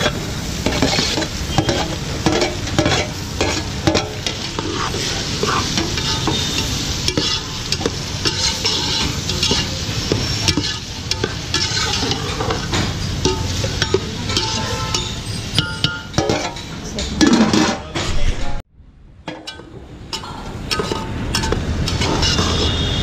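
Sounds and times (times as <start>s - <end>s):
food sizzling: 0.0s - 17.2s, 19.3s - 23.0s
metal spatula scraping pot: 0.0s - 18.0s, 19.3s - 23.0s.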